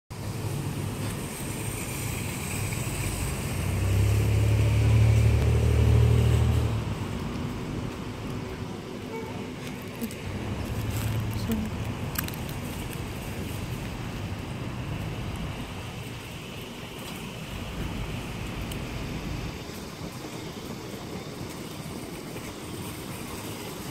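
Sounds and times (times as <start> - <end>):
car engine humming: 0.1 - 23.6
even hiss: 0.2 - 8.2
wind buffeting microphone: 0.2 - 23.9.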